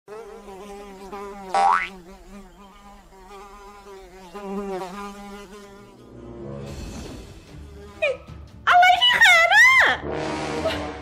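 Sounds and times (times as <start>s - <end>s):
flies buzzing: 0.1s - 6.4s, 7.2s - 8.4s.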